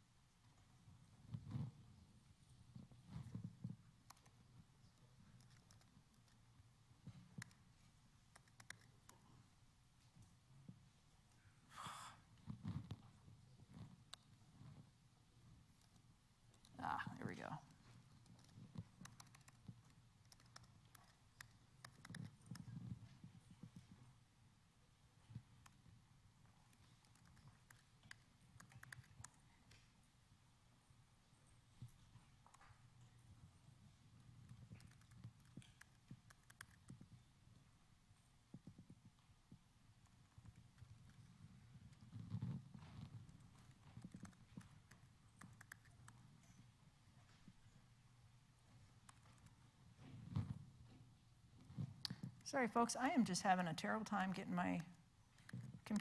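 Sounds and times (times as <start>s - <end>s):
laptop keys clicking: 8.3s - 9.2s, 18.2s - 22.7s, 26.7s - 29.4s, 34.6s - 37.1s, 43.2s - 46.2s.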